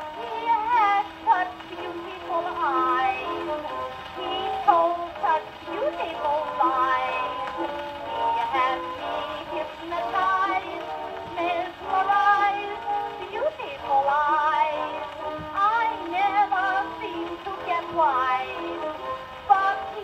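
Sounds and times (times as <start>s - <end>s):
woman singing on gramophone record: 0.0s - 20.0s.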